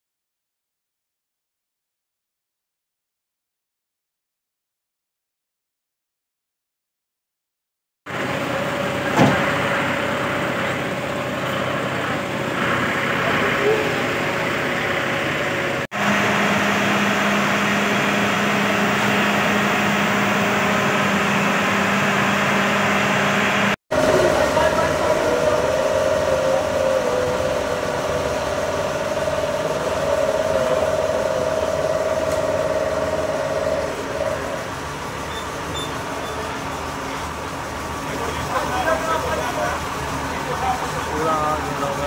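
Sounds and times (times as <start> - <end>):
fire engine humming: 8.1 - 42.0
crowd voices: 8.4 - 15.8, 23.9 - 42.0.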